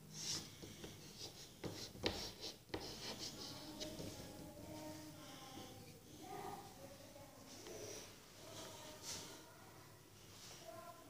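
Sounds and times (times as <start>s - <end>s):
chalk scratching on blackboard: 0.2s - 4.1s
chalk tapping: 0.3s - 4.2s.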